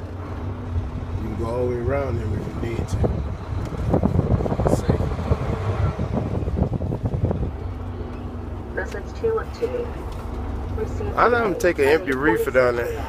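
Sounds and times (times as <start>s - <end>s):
diesel engine running: 0.0s - 13.0s
rattling in truck cab: 0.0s - 13.0s.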